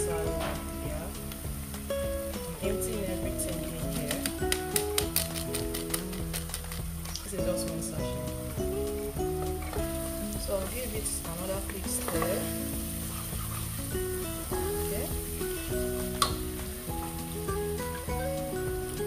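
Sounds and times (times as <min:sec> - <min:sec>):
instrumental background music: 0:00.0 - 0:19.0
onions sizzling in a pot: 0:00.0 - 0:19.0
wooden spoon stirring: 0:10.0 - 0:15.4
sharp tap: 0:16.2 - 0:16.5.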